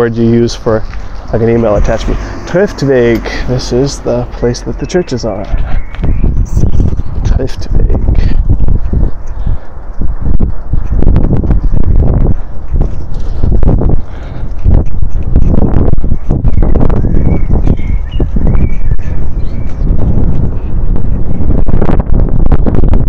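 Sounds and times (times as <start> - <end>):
wind rumble on microphone: 0.0 - 23.0.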